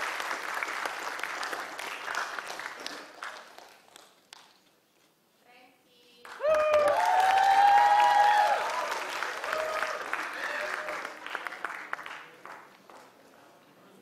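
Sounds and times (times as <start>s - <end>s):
audience applause: 0.0s - 4.2s, 6.3s - 13.2s
shouted cheers and whoops: 6.4s - 11.0s.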